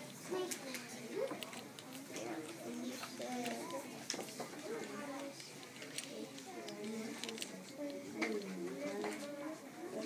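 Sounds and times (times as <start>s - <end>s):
young children talking: 0.0s - 10.0s.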